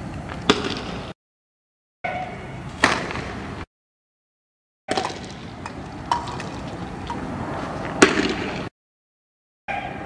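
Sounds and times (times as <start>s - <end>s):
street noise: 4.9s - 8.7s.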